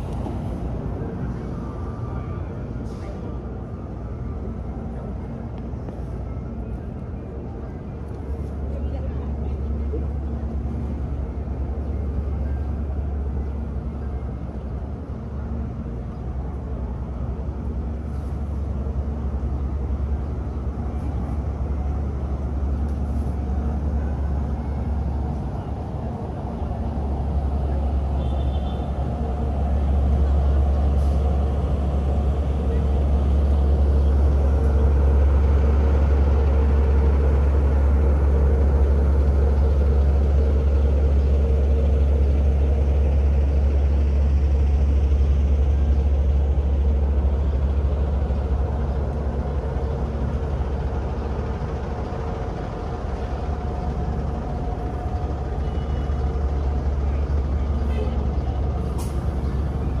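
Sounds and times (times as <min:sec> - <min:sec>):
bus engines: 0:00.0 - 1:00.0
road traffic rumble: 0:00.0 - 1:00.0.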